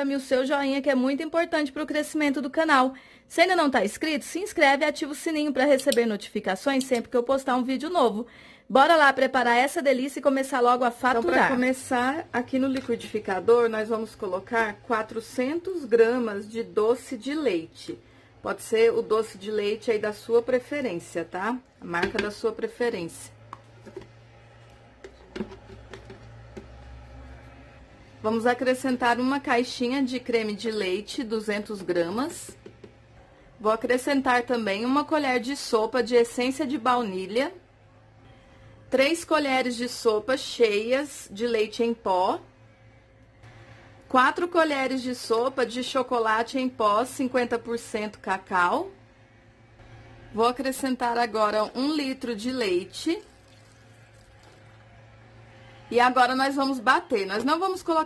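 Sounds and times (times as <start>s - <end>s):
milk pouring into a jar: 53.2s - 55.8s.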